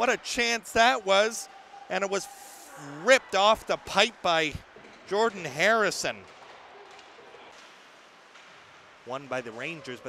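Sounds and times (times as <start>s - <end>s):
ice rink ambience hiss: 2.2s - 3.1s.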